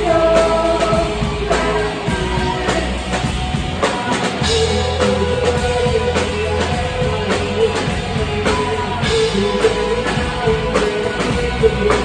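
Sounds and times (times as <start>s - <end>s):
drum kit beating: 0.0s - 12.0s
electric guitars: 0.0s - 12.0s.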